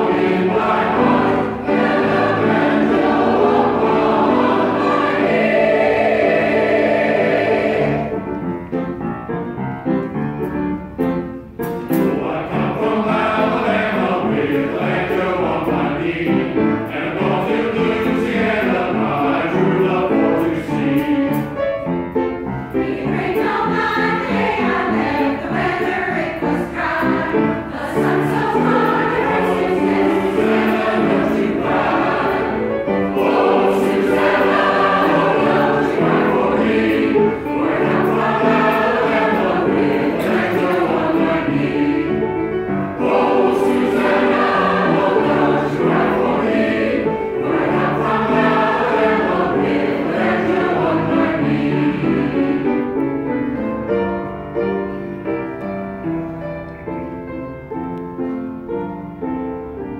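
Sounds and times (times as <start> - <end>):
mixed choir singing: 0.0 - 8.5, 11.9 - 21.6, 22.7 - 53.2.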